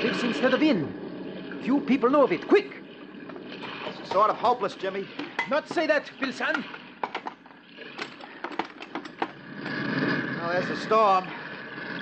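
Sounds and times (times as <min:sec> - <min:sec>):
wooden oars knocking and clattering: 0:06.5 - 0:09.4.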